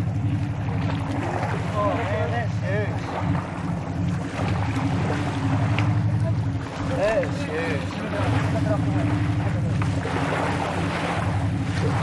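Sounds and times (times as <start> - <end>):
boat engine running: 0.0 - 12.0
water rushing along hull: 0.0 - 12.0.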